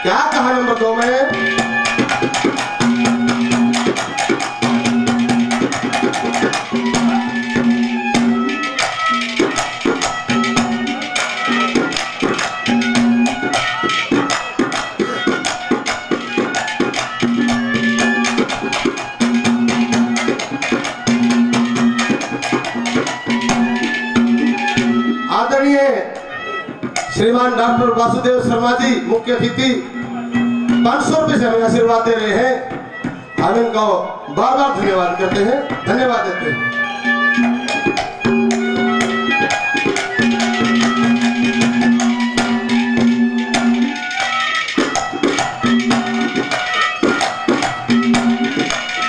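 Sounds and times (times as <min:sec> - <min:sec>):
melody of held notes: 0:00.0 - 0:27.0, 0:27.9 - 0:49.0
fast hand-drum rhythm: 0:00.0 - 0:49.0.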